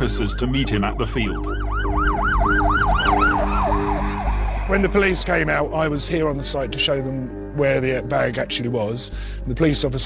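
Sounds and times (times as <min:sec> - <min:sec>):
police siren yelping: 0:00.0 - 0:05.7
low music drone: 0:00.0 - 0:10.0.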